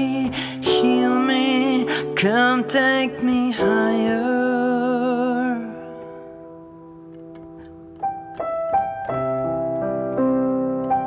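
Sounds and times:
solo piano notes and chords: 0:00.0 - 0:11.0.

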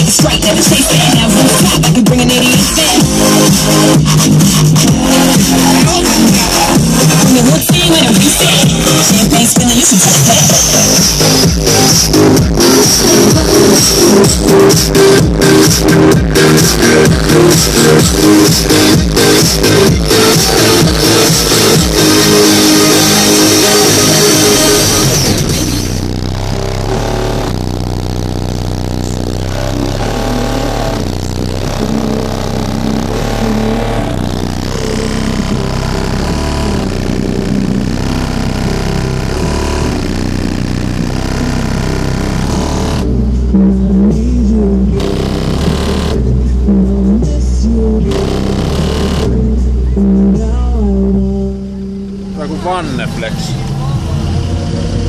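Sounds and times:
loud music with heavy bass: 0:00.0 - 0:55.0.

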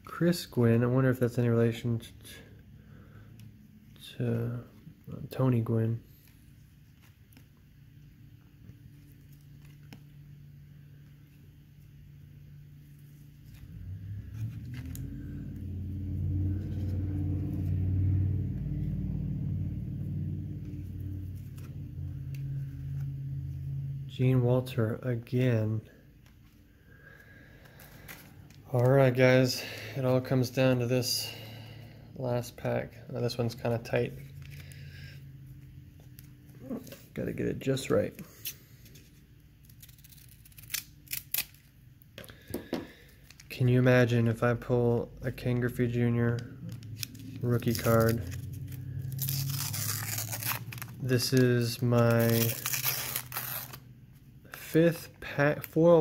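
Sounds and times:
low engine rumble: 0:12.1 - 0:38.9, 0:42.4 - 0:54.6
foil wrapper crackling: 0:46.7 - 0:53.9.

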